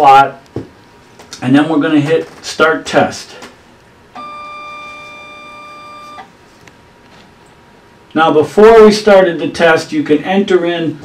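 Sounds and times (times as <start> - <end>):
steady electronic tone: 4.1 - 6.3.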